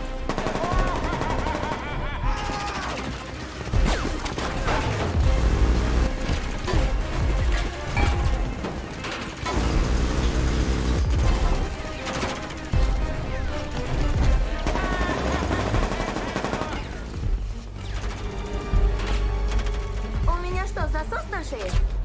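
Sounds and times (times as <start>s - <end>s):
film music score: 0.0s - 22.0s
automatic gunfire: 0.3s - 4.0s.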